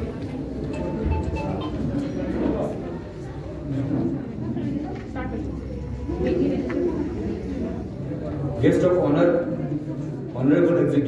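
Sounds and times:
low voices talking: 0.0 - 11.0.

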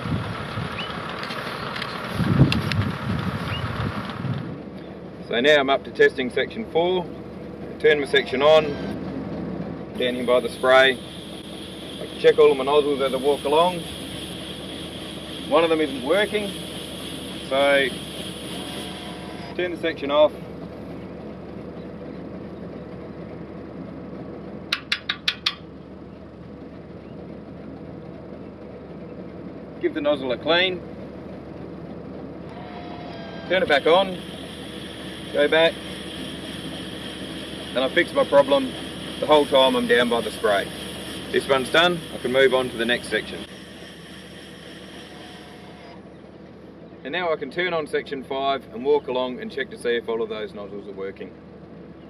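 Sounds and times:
boom sprayer drone: 0.0 - 27.9, 29.7 - 51.4
steady machine hum: 0.0 - 52.0
nozzles spraying hiss: 10.0 - 20.5, 33.6 - 46.1.

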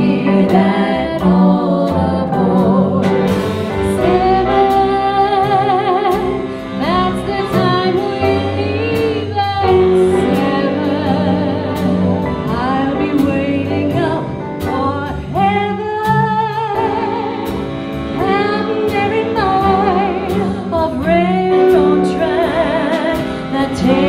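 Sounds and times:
women singing together: 0.0 - 3.1
big band playing: 0.0 - 24.0
walking bass: 0.0 - 24.0
drum and cymbal hits: 0.2 - 21.2.

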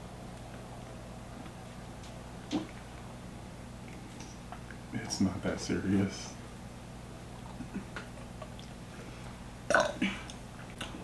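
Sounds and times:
person burping: 9.7 - 10.3.

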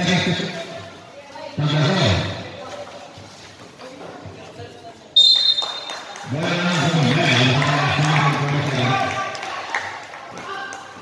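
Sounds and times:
referee's whistle blast: 5.2 - 5.9.

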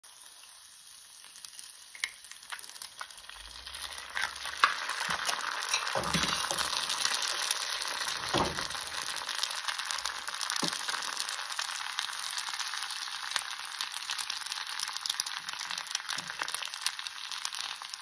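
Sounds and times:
fritter sizzling in hot oil: 0.0 - 18.0.

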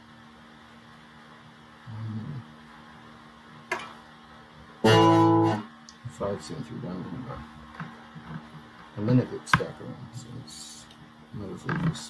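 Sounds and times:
electric guitar amplifier hum: 0.0 - 12.0.

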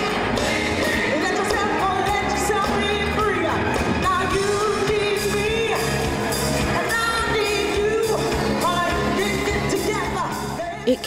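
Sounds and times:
soul band playing: 0.0 - 11.0
women singing: 0.0 - 11.0.

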